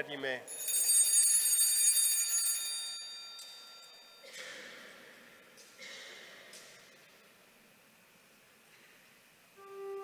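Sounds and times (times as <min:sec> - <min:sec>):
small bells ringing: 0:00.5 - 0:04.3.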